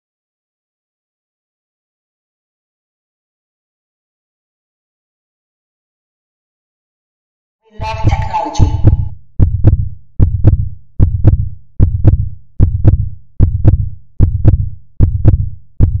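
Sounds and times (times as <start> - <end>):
deep double thump: 8.0 - 16.0.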